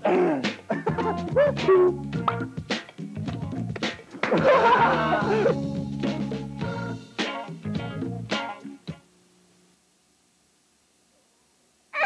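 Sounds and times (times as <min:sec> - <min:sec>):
music starting: 0:00.8 - 0:03.8, 0:04.4 - 0:09.0.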